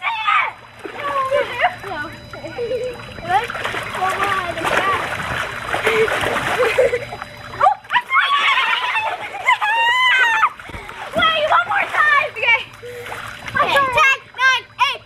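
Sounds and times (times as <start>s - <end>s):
girls yelling and shrieking: 0.0s - 1.8s, 7.6s - 12.5s
water splashing and sloshing: 0.0s - 15.0s.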